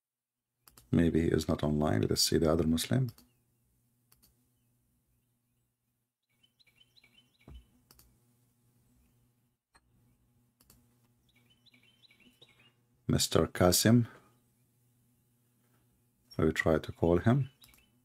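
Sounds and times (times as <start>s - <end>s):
computer mouse clicks: 0.6s - 0.9s, 4.1s - 4.4s, 7.5s - 8.1s, 10.6s - 10.8s, 17.6s - 17.9s.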